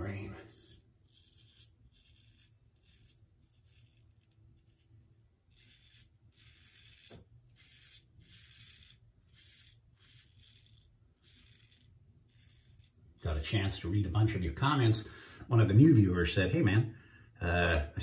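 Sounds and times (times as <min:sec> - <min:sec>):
razor scraping stubble: 0:00.0 - 0:14.4.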